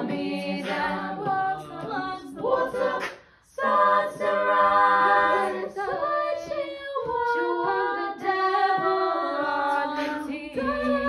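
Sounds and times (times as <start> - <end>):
women singing in close harmony: 0.0 - 11.0.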